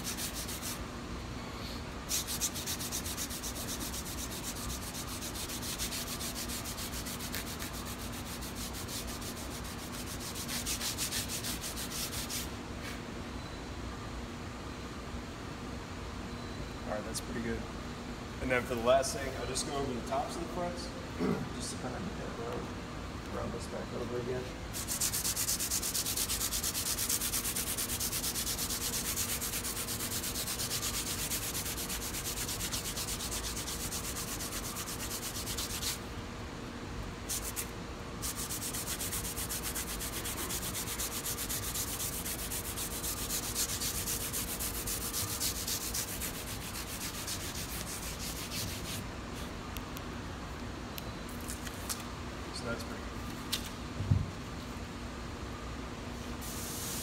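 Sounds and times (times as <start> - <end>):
sandpaper rubbing on guitar frets: 0.0 - 0.8, 2.1 - 12.5, 24.7 - 36.1, 37.3 - 49.0.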